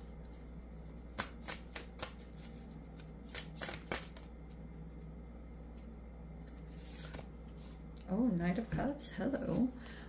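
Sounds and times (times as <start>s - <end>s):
cards being shuffled: 0.2s - 7.8s.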